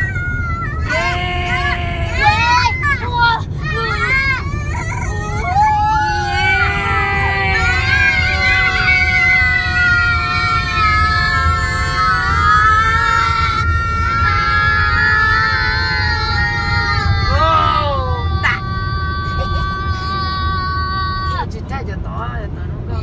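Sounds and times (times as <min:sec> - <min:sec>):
road rumble in a tunnel: 0:00.0 - 0:23.0.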